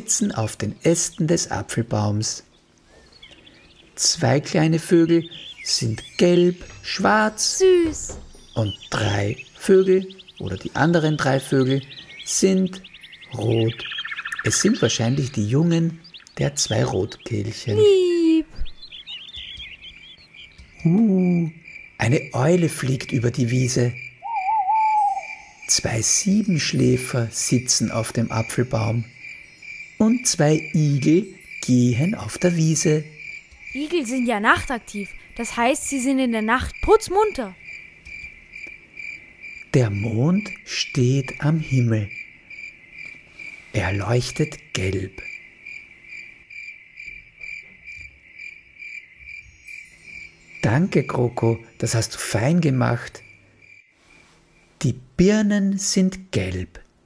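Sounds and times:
songbirds chirping: 0:00.0 - 0:57.0
cricket trill: 0:05.0 - 0:18.0, 0:18.6 - 0:54.8.

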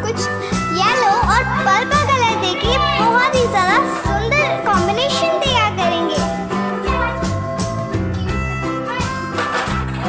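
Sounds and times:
background music with steady beat: 0:00.0 - 0:10.0
children's voices gliding in pitch: 0:00.7 - 0:07.3.

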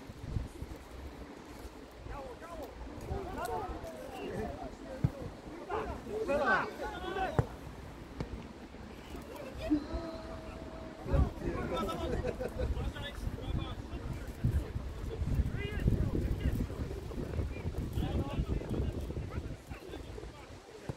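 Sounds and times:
footballers shouting: 0:03.1 - 0:08.4, 0:09.2 - 0:14.2
long held call: 0:09.4 - 0:14.0.

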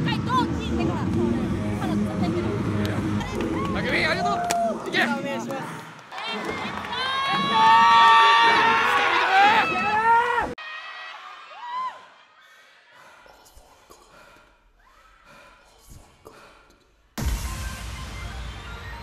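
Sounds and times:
audience cheering and screaming: 0:06.2 - 0:12.2.

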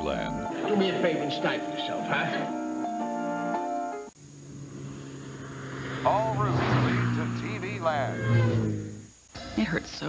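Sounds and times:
music and voice: 0:00.0 - 0:02.6
vehicle engine drone: 0:04.1 - 0:09.7.

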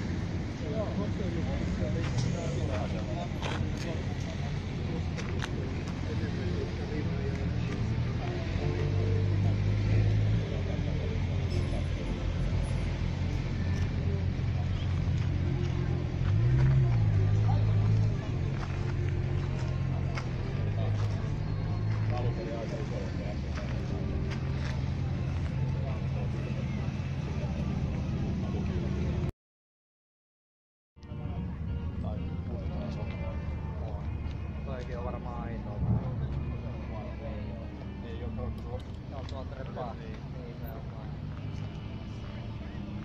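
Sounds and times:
car engine idling and revving: 0:00.0 - 0:29.3, 0:31.0 - 0:43.0.

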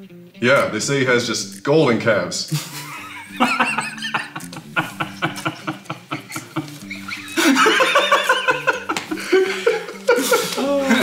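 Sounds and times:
men laughing: 0:02.5 - 0:11.0.

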